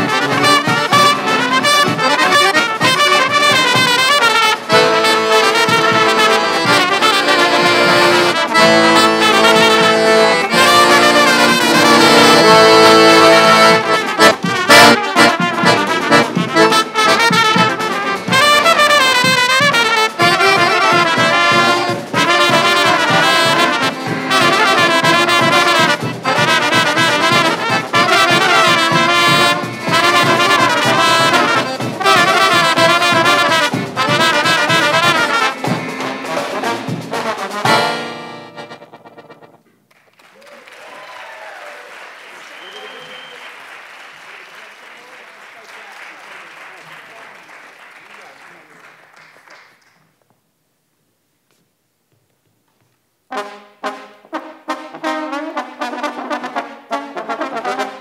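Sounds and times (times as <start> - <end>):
brass band playing: 0.0 - 39.6, 53.3 - 58.0
snare drum and bass drum beat: 0.0 - 39.6
audience applause: 39.9 - 50.1.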